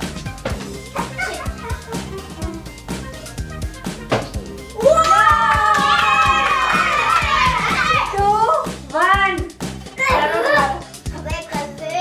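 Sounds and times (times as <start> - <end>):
background music with steady beat: 0.0 - 12.0
children shouting and cheering: 0.9 - 3.9, 4.7 - 12.0.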